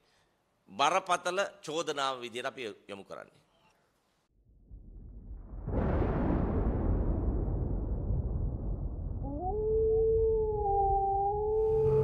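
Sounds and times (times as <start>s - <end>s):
low rumble: 4.5s - 12.0s
wolf howling: 9.2s - 12.0s.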